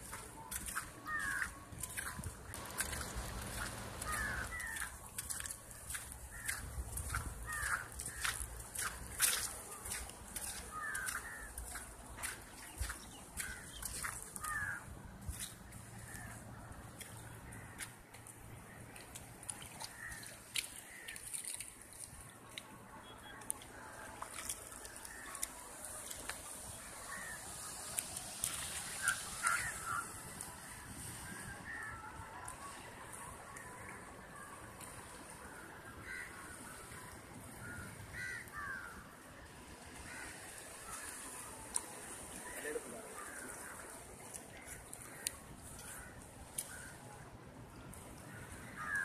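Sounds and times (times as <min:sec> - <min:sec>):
crows cawing: 0:00.6 - 0:01.6, 0:02.6 - 0:06.6, 0:07.4 - 0:08.9, 0:10.5 - 0:11.9, 0:13.4 - 0:14.9, 0:19.8 - 0:21.6, 0:24.8 - 0:25.5, 0:26.8 - 0:27.7, 0:28.8 - 0:30.2, 0:31.6 - 0:32.1, 0:36.0 - 0:36.9, 0:37.6 - 0:39.0, 0:40.0 - 0:43.9, 0:48.3 - 0:49.0.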